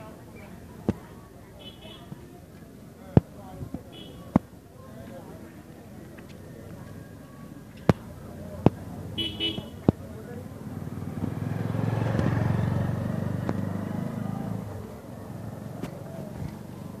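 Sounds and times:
motorcycle passing by: 10.2s - 17.0s.

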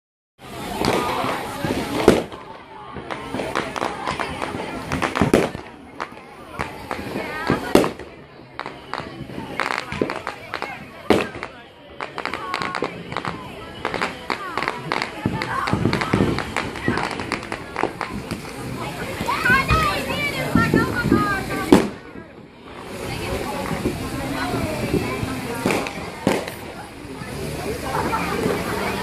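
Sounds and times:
fireworks bangs: 0.4s - 29.0s
people chattering: 0.4s - 29.0s.

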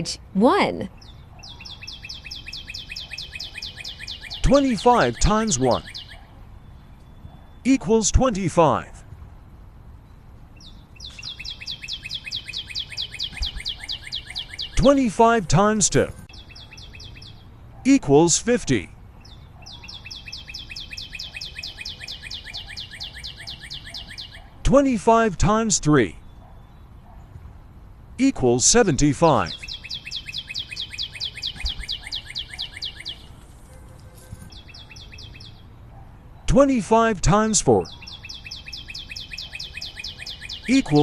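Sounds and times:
bird trilling high chirps: 0.9s - 7.8s, 10.6s - 15.4s, 16.2s - 17.5s, 19.2s - 24.5s, 29.3s - 35.7s, 37.8s - 41.0s
lower bird chirps: 0.9s - 8.0s, 10.0s - 24.6s, 28.8s - 36.5s, 37.4s - 41.0s
rapid high chirping trill: 10.6s - 14.9s, 29.5s - 33.3s.

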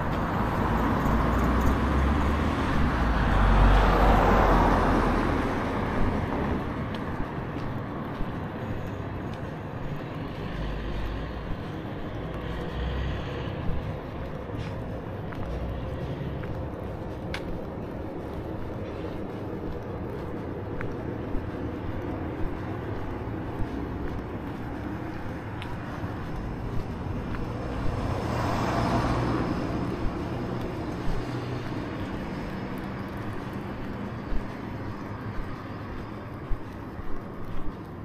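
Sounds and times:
car passing: 0.0s - 38.0s
traffic hum: 0.0s - 38.0s.

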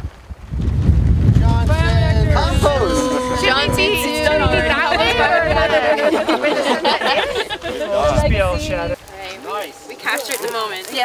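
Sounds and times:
wind buffeting microphone: 0.0s - 10.7s
voices: 1.4s - 11.0s.

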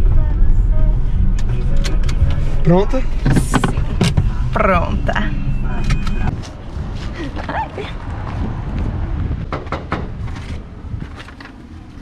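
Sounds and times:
low steady rumble: 0.0s - 12.0s
car doors clicking and knocking: 3.2s - 4.4s, 9.4s - 10.6s.

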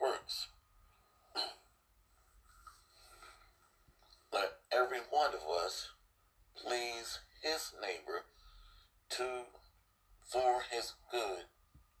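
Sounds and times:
man speaking: 0.0s - 0.5s, 4.3s - 6.0s, 6.6s - 8.3s, 9.1s - 9.6s, 10.2s - 11.5s.

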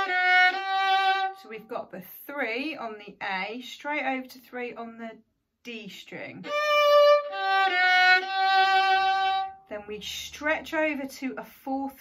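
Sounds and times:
bowed violin notes: 0.0s - 1.6s, 6.4s - 9.7s.

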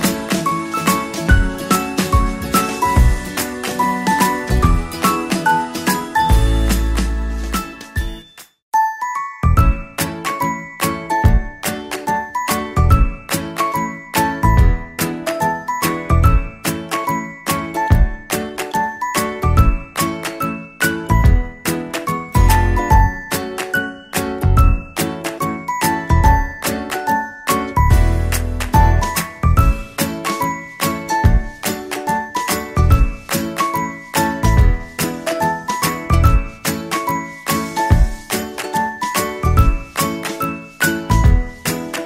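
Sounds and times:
bell-like tune over low beat: 9.3s - 10.0s, 22.2s - 23.4s, 24.4s - 25.0s, 26.0s - 26.7s, 27.6s - 31.6s.

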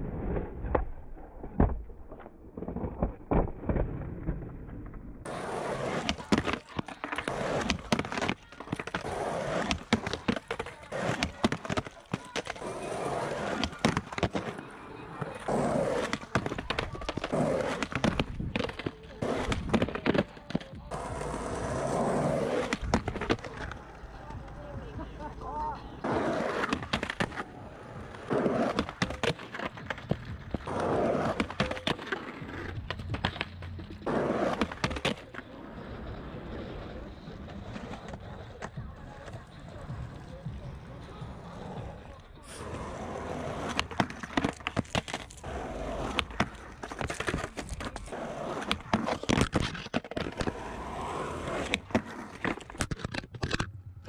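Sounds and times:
skateboard rolling on asphalt: 0.0s - 54.0s
skateboard grinding concrete ledge: 5.2s - 24.7s, 25.9s - 39.4s, 41.2s - 53.7s
skateboard clacks: 5.2s - 54.0s.

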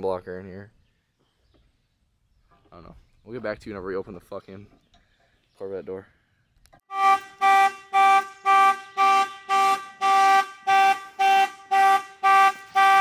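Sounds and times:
car horn alarm honks: 6.9s - 13.0s.

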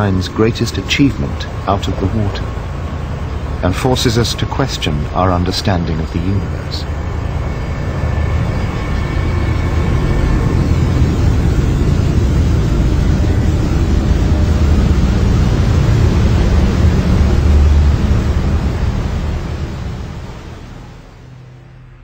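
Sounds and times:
waterfall rushing: 0.0s - 21.9s.

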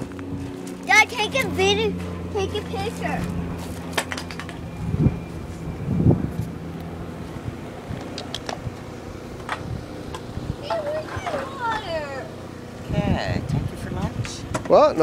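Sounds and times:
distant aircraft droning: 0.0s - 15.0s
child's high gliding voice: 0.8s - 3.4s, 10.6s - 12.3s.

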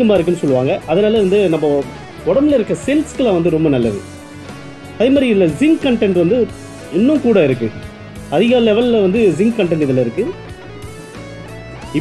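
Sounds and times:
background music with guitar: 0.0s - 12.0s
person speaking: 5.0s - 10.4s.

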